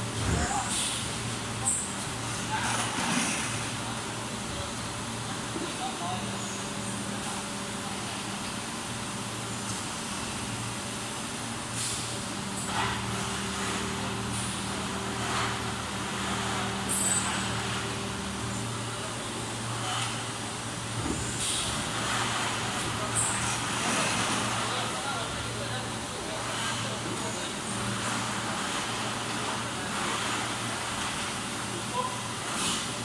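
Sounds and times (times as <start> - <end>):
machinery humming and hissing: 0.0 - 33.0.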